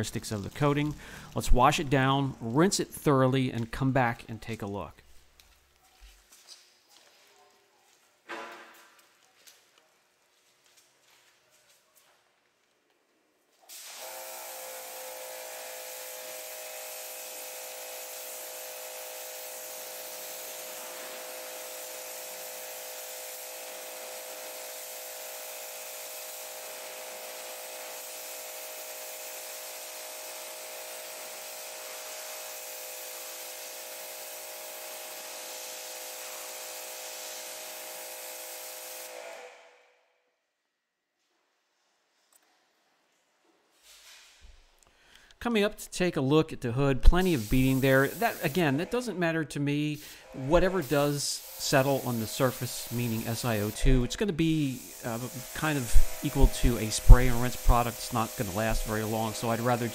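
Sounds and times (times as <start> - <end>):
pressure washer water spray: 13.7 - 39.7, 47.0 - 48.9, 50.0 - 59.9.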